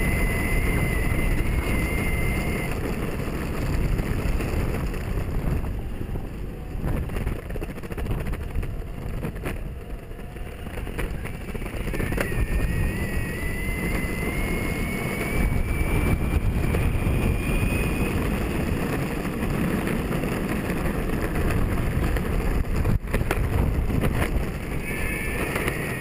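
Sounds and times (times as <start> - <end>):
electric motor whine: 0.0 - 7.2, 8.9 - 26.0
wheels rumbling on road: 0.0 - 26.0
wind on microphone: 0.0 - 26.0.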